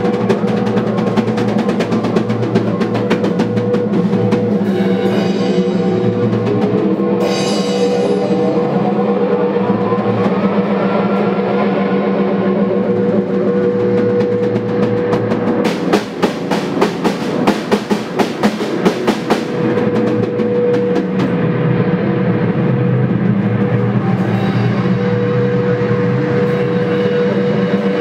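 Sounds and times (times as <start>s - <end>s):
sharp percussive hits: 0.0s - 10.4s, 13.4s - 21.7s
loud electronic drone: 0.0s - 28.0s.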